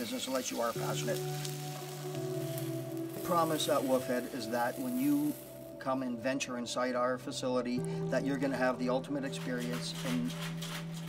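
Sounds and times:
food sizzling in a hot pan: 0:00.0 - 0:05.9
background music: 0:00.0 - 0:11.0.

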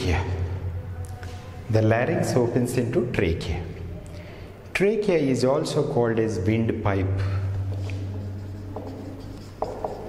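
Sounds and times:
steady low hum: 0:00.0 - 0:10.0
marker squeaking on whiteboard: 0:07.6 - 0:10.0.

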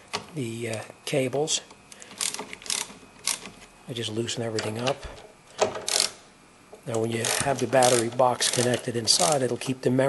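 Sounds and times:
socket ratchet clicking metal on metal: 0:02.2 - 0:03.5, 0:05.8 - 0:06.2, 0:07.2 - 0:08.8.

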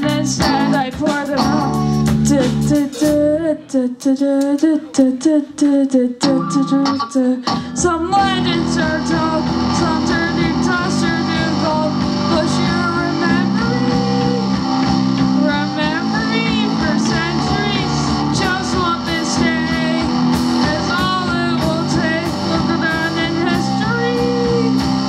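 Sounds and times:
electric guitars: 0:00.0 - 0:03.4, 0:06.2 - 0:25.0
drum kit: 0:00.0 - 0:03.5, 0:07.5 - 0:25.0.

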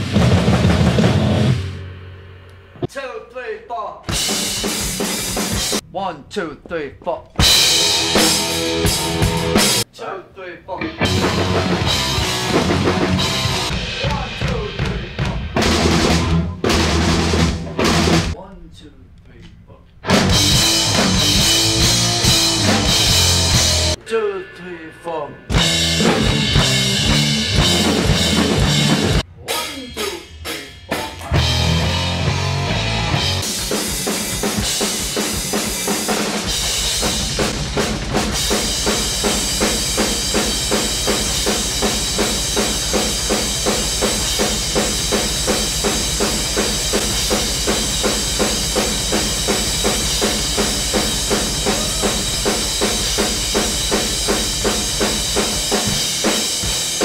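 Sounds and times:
rapid bass drum: 0:00.0 - 0:01.6, 0:11.0 - 0:18.4, 0:20.1 - 0:24.0, 0:25.5 - 0:29.2, 0:31.3 - 0:57.0
drum kit played hard: 0:00.0 - 0:02.2, 0:04.0 - 0:05.9, 0:07.4 - 0:09.9, 0:10.9 - 0:18.4, 0:20.0 - 0:24.0, 0:25.5 - 0:57.0.

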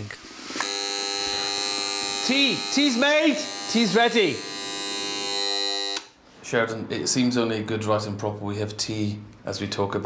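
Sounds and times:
electric alarm buzzer: 0:00.6 - 0:06.2.

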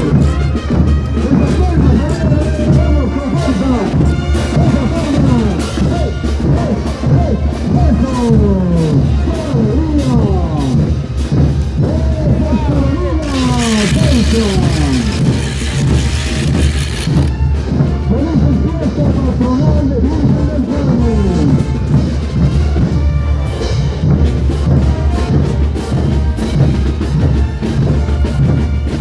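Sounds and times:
brass band music: 0:00.0 - 0:07.7, 0:13.0 - 0:18.5, 0:21.2 - 0:29.0.

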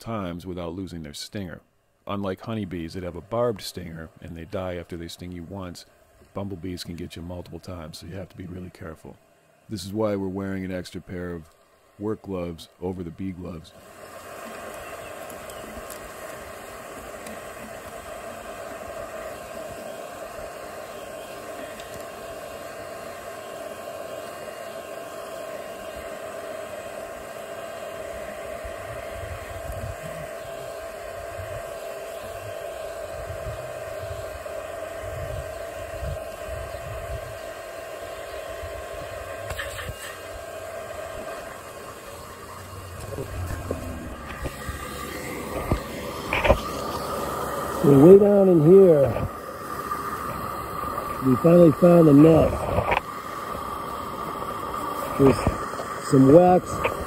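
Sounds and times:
vacuum motor whining: 0:13.6 - 0:57.0
low rumbles: 0:42.5 - 0:45.9.

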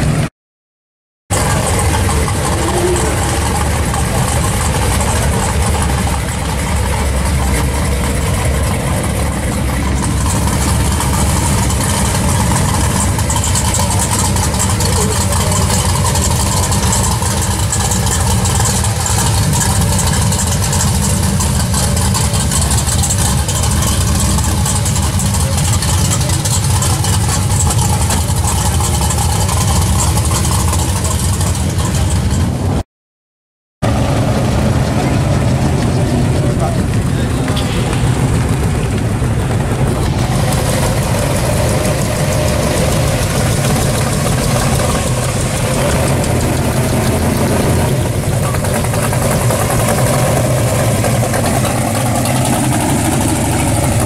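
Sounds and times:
car engine idling: 0:01.3 - 0:32.8, 0:33.8 - 0:54.0.

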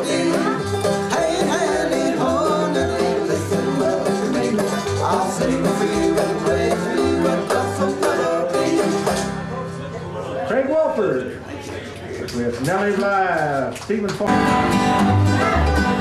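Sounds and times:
plucked strings: 0:00.0 - 0:09.7, 0:14.3 - 0:16.0
bass line: 0:00.0 - 0:09.8, 0:14.3 - 0:16.0
banjo: 0:00.0 - 0:10.2, 0:14.3 - 0:16.0.

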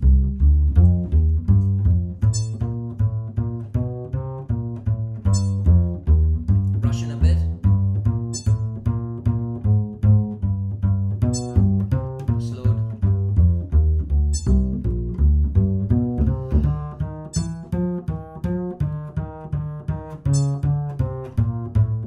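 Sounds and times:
plucked double bass walking line: 0:00.0 - 0:22.0
high metronome beep: 0:02.2 - 0:02.7, 0:05.3 - 0:05.7, 0:08.3 - 0:08.8, 0:11.3 - 0:11.7, 0:14.3 - 0:14.8, 0:17.3 - 0:17.8.

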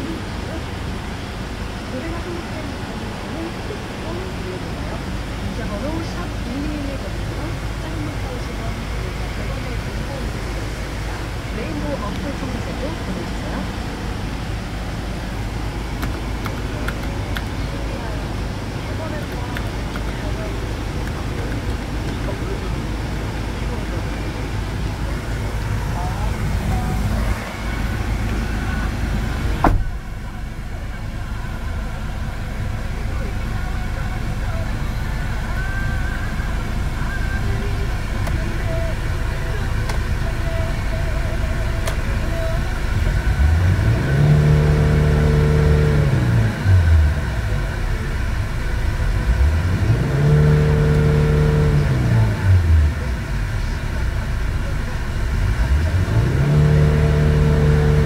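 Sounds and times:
van engine idling and revving: 0:00.0 - 0:58.0.

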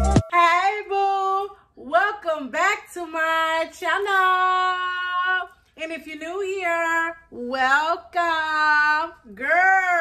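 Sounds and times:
woman singing high: 0:00.0 - 0:01.5.

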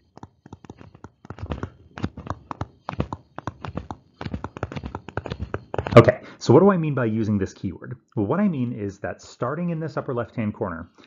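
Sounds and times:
stylus tapping on tablet: 0:00.0 - 0:06.0.

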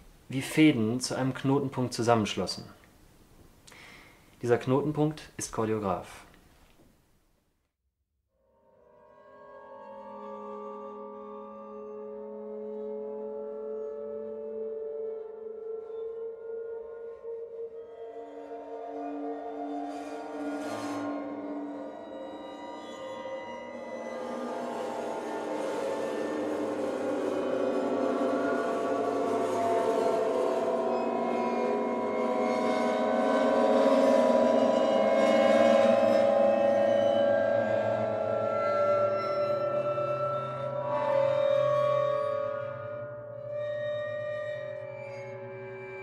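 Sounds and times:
sustained ringing string tones: 0:08.6 - 0:46.0.

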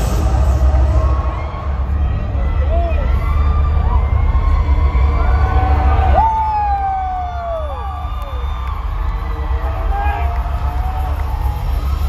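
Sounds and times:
concert crowd cheering and screaming: 0:00.0 - 0:12.0.

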